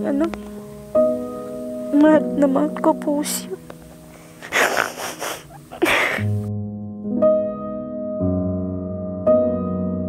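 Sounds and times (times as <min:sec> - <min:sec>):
woman sobbing: 0:04.4 - 0:06.4.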